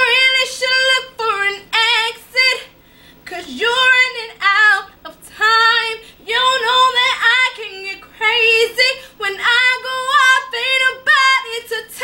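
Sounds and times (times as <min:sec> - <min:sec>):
woman singing: 0:00.0 - 0:12.0.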